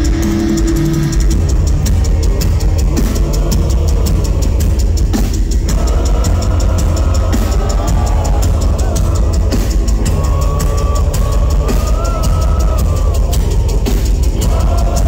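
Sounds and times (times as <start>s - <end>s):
heavy metal band playing: 0.0s - 15.0s.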